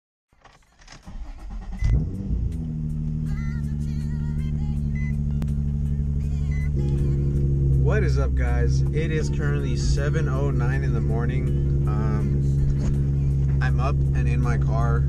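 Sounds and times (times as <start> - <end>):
car engine starting and idling: 0.3 - 15.0.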